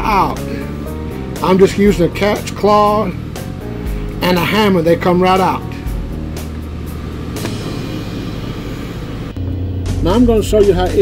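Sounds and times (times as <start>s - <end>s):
faint background music: 0.0s - 11.0s
steady low rumble: 0.7s - 11.0s.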